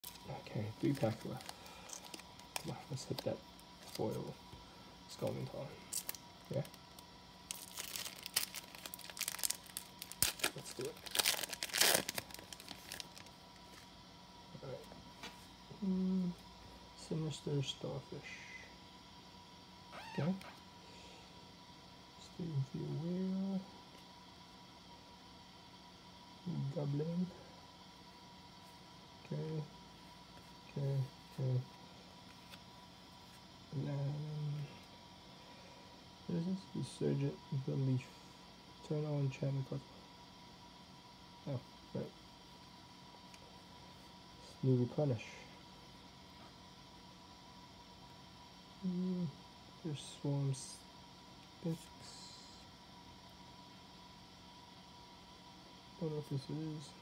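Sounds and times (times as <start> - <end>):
foil wrapper crinkling: 0.0 - 4.2, 5.9 - 13.9
man humming: 15.7 - 16.4, 48.8 - 49.4.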